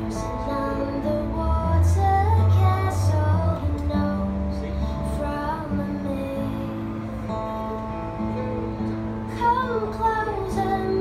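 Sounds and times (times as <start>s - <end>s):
acoustic guitars playing: 0.0s - 11.0s
woman singing: 0.0s - 11.0s.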